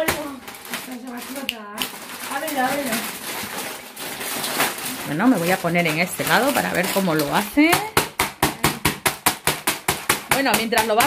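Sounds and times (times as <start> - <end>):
rolling pin striking chip bag: 0.0 - 3.6, 4.2 - 11.0.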